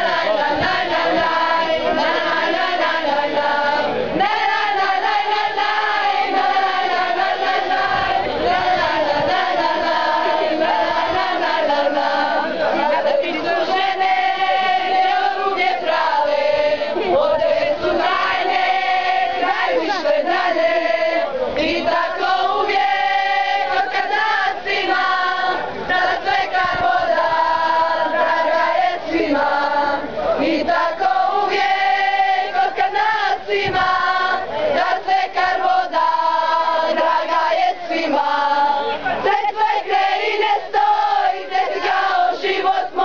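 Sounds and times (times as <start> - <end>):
women singing together: 0.0 - 43.0.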